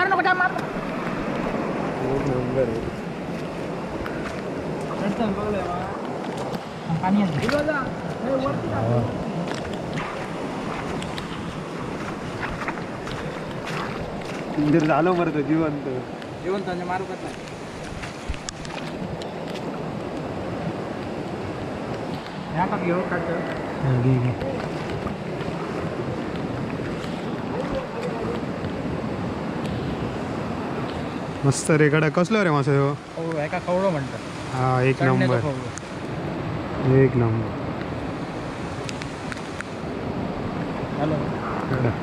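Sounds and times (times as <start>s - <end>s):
wind buffeting microphone: 0.0s - 32.3s, 33.0s - 42.0s
shallow water rushing through grass: 0.0s - 36.9s
rain: 0.0s - 42.0s
faint splashes and rustles: 2.2s - 16.5s, 17.2s - 21.1s, 23.3s - 28.8s.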